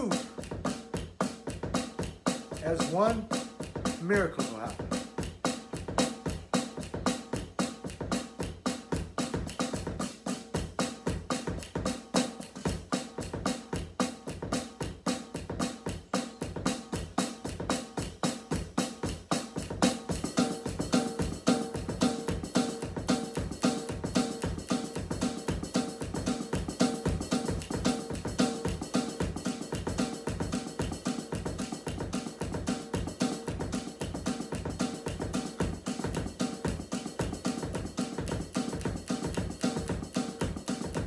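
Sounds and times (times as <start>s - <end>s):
drum kit played with sticks: 0.0s - 41.0s.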